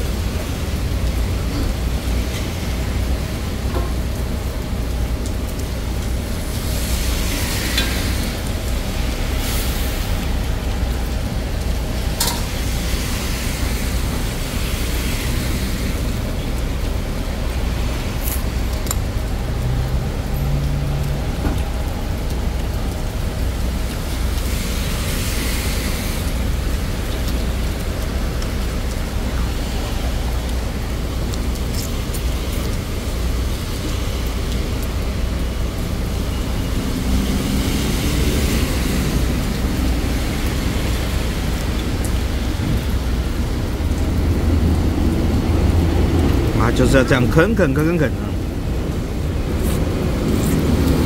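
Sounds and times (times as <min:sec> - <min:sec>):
street traffic: 0:00.0 - 0:51.0
vehicles passing: 0:00.0 - 0:51.0.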